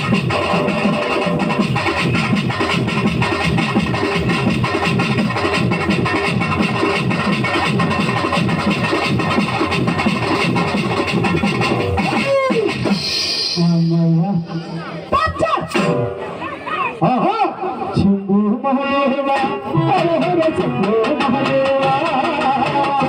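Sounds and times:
folk dance music on keyboard: 0.0 - 13.0, 17.8 - 23.0
fast drum beat: 0.0 - 13.9, 19.8 - 23.0.

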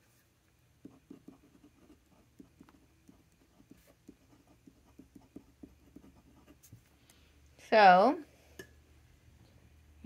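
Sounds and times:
pen scratching on paper: 0.8 - 6.8.

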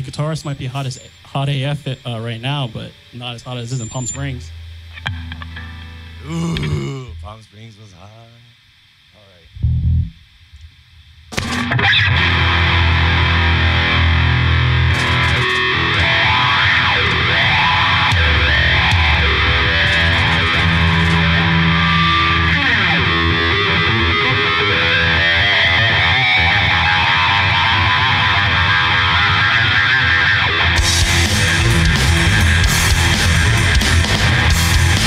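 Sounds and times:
distorted electric guitar: 0.0 - 7.7, 8.5 - 35.0
bass guitar: 4.2 - 7.3, 9.5 - 35.0
drum kit: 14.9 - 22.4, 30.7 - 35.0.

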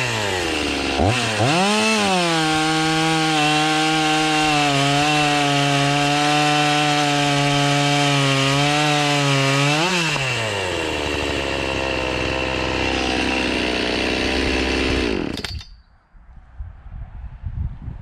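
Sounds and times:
chainsaw running at full throttle: 0.0 - 15.7.

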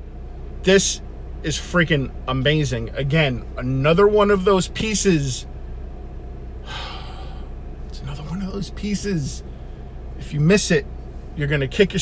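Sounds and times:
steady low hum: 0.0 - 12.0
man speaking: 0.7 - 5.5, 7.9 - 9.4, 10.2 - 10.8, 11.4 - 12.0
man breathing in: 6.6 - 7.6.

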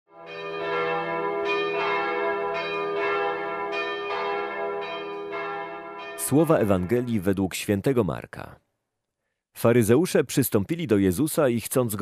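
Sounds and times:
bells ringing: 0.1 - 7.4.

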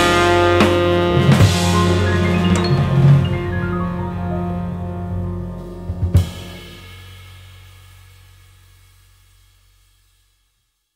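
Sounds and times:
low held note: 1.5 - 6.0.

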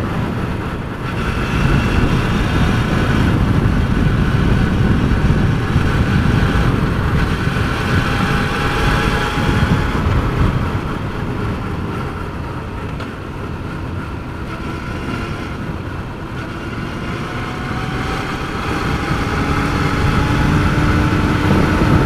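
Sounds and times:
motorcycle engine running: 0.0 - 22.0
wind rumble on microphone: 0.0 - 22.0.

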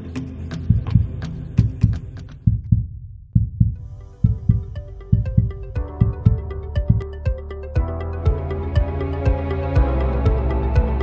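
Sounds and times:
electronic music: 0.0 - 2.5, 3.8 - 11.0
heartbeat-like double thumps: 0.7 - 10.9.

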